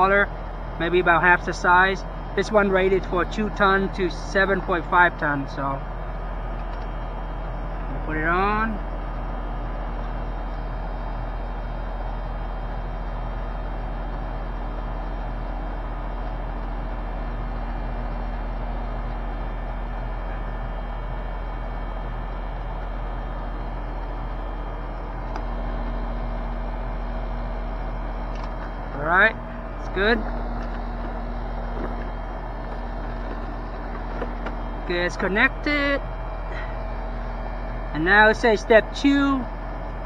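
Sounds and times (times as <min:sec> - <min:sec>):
air conditioner compressor hum: 0:00.0 - 0:40.0
condenser fan: 0:11.6 - 0:40.0.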